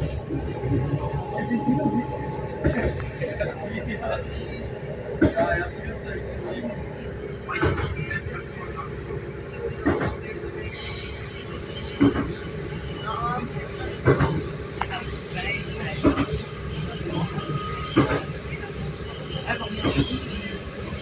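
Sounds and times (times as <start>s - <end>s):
train carriage rumble: 0.0s - 21.0s
high-pitched wheel squeal: 10.8s - 21.0s.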